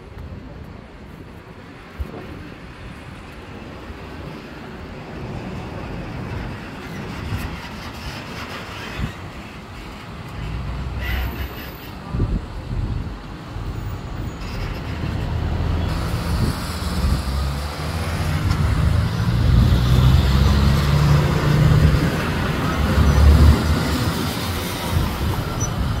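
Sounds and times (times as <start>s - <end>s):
low rumble of traffic: 0.0s - 26.0s
wind on microphone: 12.0s - 26.0s.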